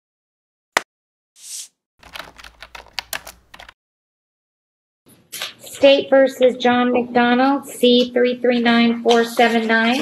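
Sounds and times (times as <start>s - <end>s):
computer keyboard typing: 2.0s - 3.8s.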